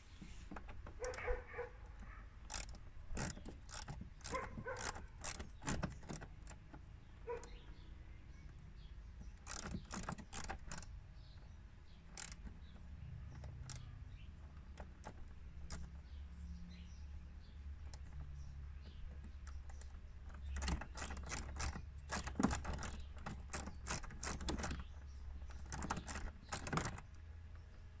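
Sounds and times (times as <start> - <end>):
hand tool clicking on metal: 0.6 - 7.6, 9.3 - 10.9, 12.1 - 12.6, 14.6 - 16.0, 19.2 - 24.9, 25.5 - 27.0
dog barking: 1.0 - 2.2, 4.3 - 4.9, 7.2 - 7.6.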